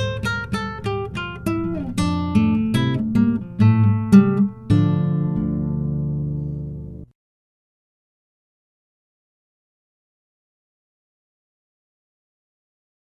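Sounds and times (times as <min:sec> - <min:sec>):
guitar chord ringing: 0:00.0 - 0:07.1.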